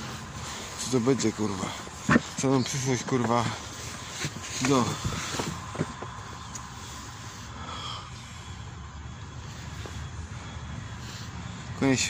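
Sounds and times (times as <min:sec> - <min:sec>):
steady low rumble with hiss: 0:00.0 - 0:12.0.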